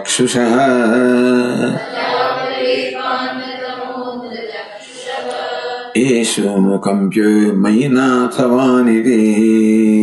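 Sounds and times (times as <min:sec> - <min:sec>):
man chanting: 0:00.0 - 0:02.0, 0:05.9 - 0:10.0.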